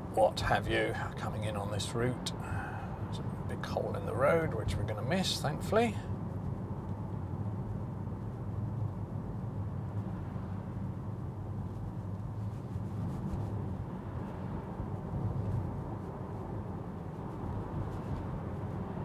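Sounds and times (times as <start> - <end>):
road and tyre rumble: 0.0 - 19.0.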